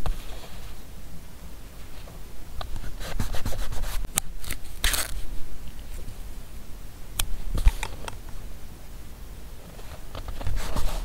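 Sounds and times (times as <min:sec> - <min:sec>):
fingers rubbing on paper: 0:02.8 - 0:04.1.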